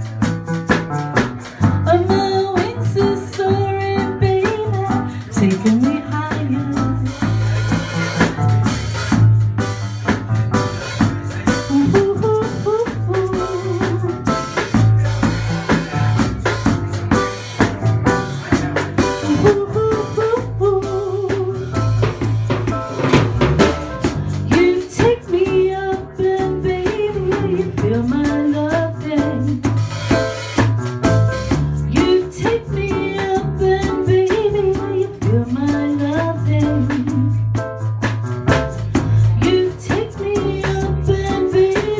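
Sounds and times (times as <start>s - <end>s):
drum kit beat: 0.0s - 41.9s
live band playing: 0.0s - 41.9s.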